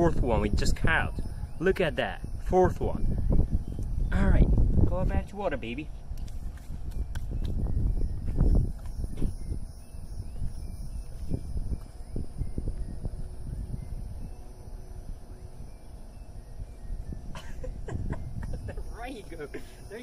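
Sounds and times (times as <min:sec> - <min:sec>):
wind buffeting microphone: 0:00.0 - 0:20.0
faint bird chirps: 0:00.8 - 0:04.3, 0:06.9 - 0:20.0.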